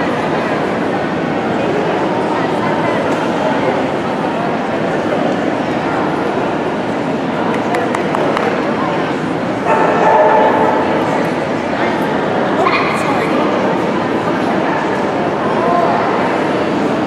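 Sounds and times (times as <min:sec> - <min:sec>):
people chattering: 0:00.0 - 0:17.0.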